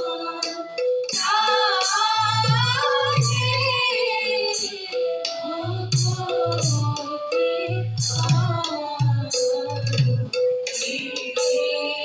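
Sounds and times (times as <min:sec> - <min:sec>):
hand cymbal strikes: 0:00.0 - 0:12.0
women singing in unison: 0:00.0 - 0:12.0.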